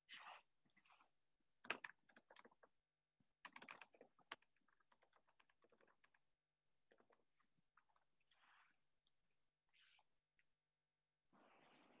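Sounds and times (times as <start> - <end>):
faint keyboard typing: 1.6 - 2.7, 3.4 - 8.3.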